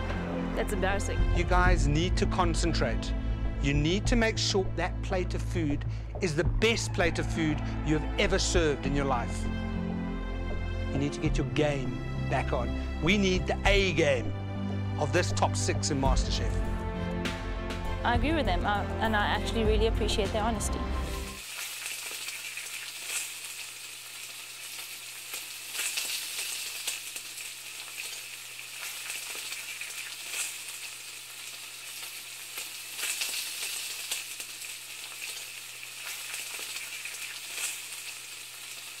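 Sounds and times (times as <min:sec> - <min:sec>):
crackling hiss: 0:21.3 - 0:39.0.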